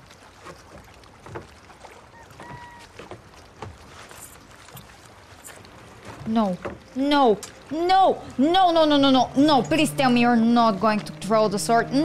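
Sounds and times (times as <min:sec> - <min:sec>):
water lapping against dock: 0:00.0 - 0:12.0
wind: 0:00.0 - 0:12.0.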